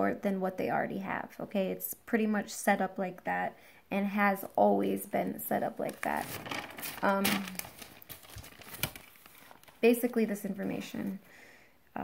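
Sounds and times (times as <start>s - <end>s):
paper rustling and crinkling: 5.8s - 10.8s.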